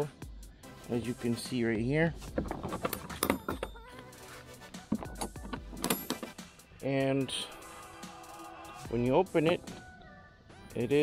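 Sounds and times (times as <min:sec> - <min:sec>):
background music: 0:00.0 - 0:11.0
metal latches clicking: 0:02.3 - 0:03.8, 0:05.0 - 0:06.4.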